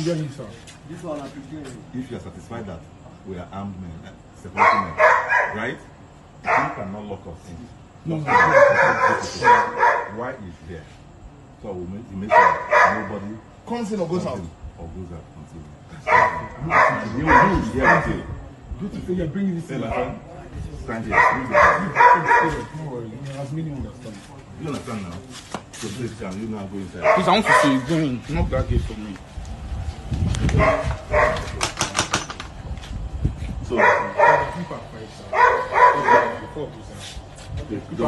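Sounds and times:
dog barking: 0:04.5 - 0:05.8, 0:06.4 - 0:06.9, 0:08.2 - 0:10.2, 0:12.3 - 0:13.2, 0:16.0 - 0:18.3, 0:19.8 - 0:20.2, 0:21.0 - 0:22.8, 0:27.0 - 0:28.0, 0:30.6 - 0:31.6, 0:33.7 - 0:36.6
sharp knocks: 0:31.2 - 0:32.6.

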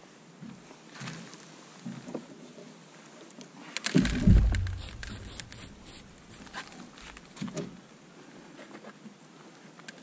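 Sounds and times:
heavy deep thump with rumble: 0:04.0 - 0:06.4.

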